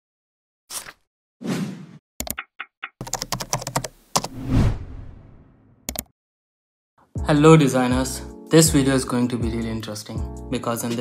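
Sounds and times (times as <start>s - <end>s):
computer keyboard typing: 2.2s - 4.4s, 5.9s - 6.1s.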